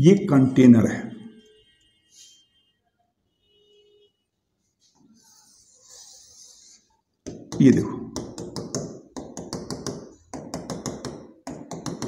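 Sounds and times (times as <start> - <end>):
pen tapping on display board: 7.2 - 12.0.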